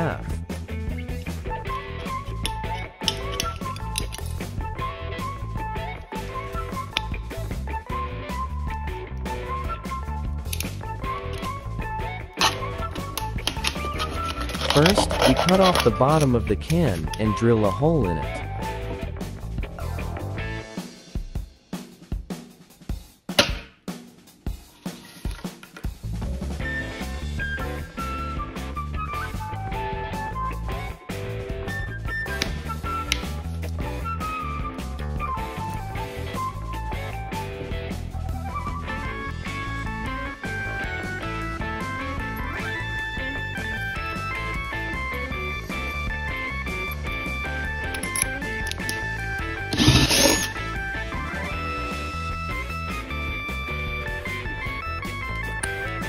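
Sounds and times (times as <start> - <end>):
background music with steady bass: 0.0 - 56.0.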